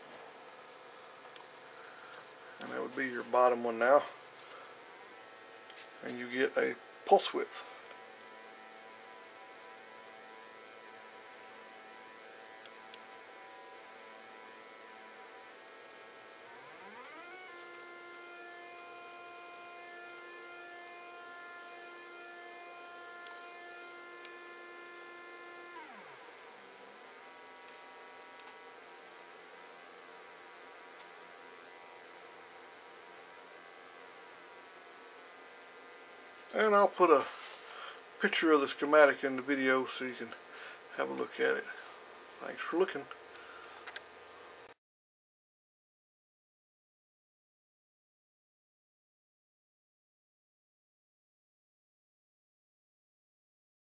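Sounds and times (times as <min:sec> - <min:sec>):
faint buzzy gliding tone: 0:00.0 - 0:44.8.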